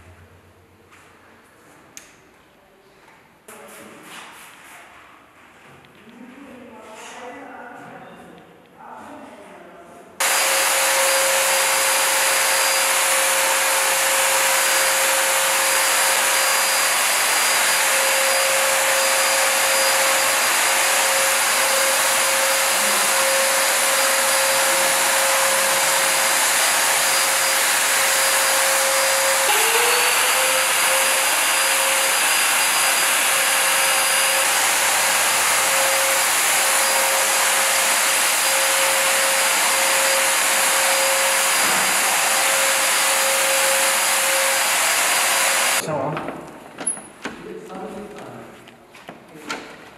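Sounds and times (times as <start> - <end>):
fogger motor whining: 10.2 - 45.8
hiss of air and spray: 10.2 - 45.8.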